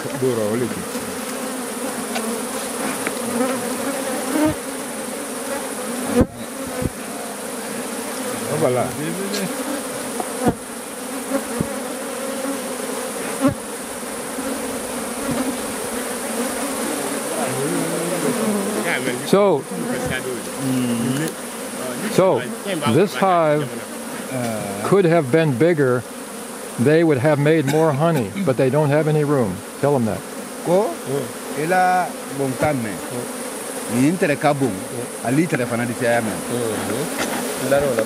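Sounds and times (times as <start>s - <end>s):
honeybees buzzing: 0.0s - 38.0s
sharp knocks: 10.2s - 10.7s.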